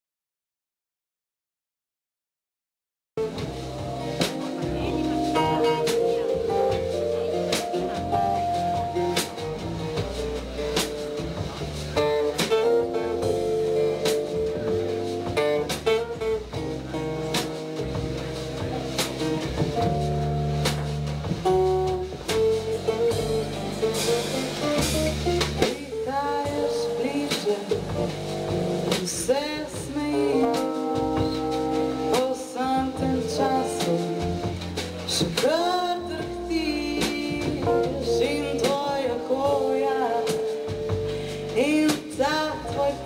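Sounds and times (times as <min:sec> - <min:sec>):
drums on cymbals: 0:03.2 - 0:43.0
guitar: 0:03.2 - 0:43.0
keyboard: 0:03.2 - 0:43.0
upright bass: 0:03.2 - 0:43.0.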